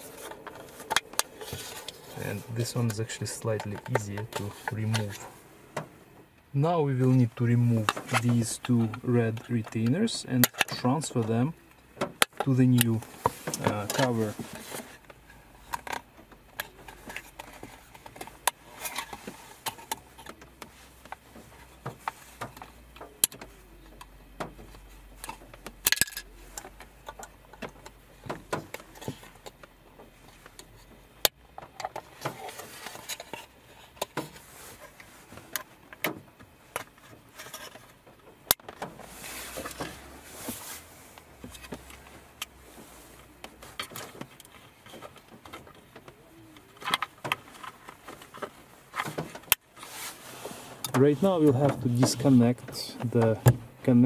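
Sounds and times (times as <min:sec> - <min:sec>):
soft rustling: 0:00.0 - 0:10.0, 0:12.4 - 0:15.8, 0:16.6 - 0:25.6, 0:32.0 - 0:54.0
plastic clips clicking and scraping: 0:00.1 - 0:05.3.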